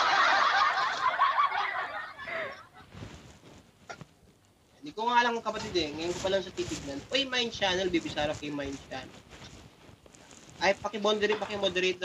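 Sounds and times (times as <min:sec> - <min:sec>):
man laughing: 0:00.0 - 0:02.8.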